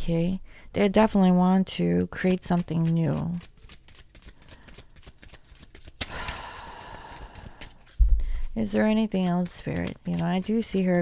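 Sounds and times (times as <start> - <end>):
cards rustling: 2.2 - 11.0
cards clicking: 2.5 - 8.0.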